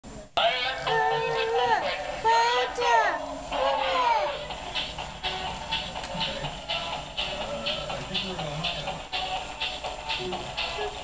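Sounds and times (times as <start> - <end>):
toy singing voice over music: 0.4 - 4.5.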